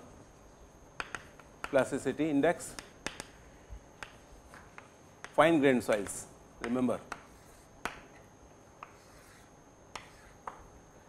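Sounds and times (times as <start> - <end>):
chalk tapping on blackboard: 1.0 - 1.9, 2.7 - 8.2, 8.8 - 10.7.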